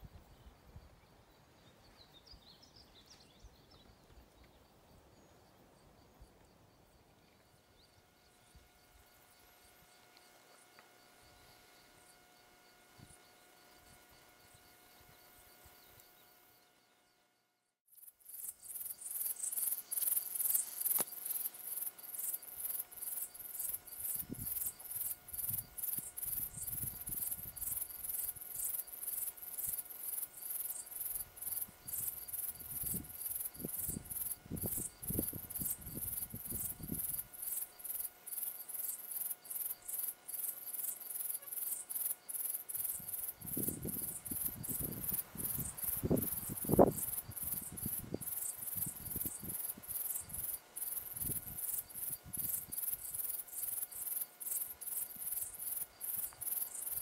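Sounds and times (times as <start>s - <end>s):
insects chirping: 0.0s - 57.0s.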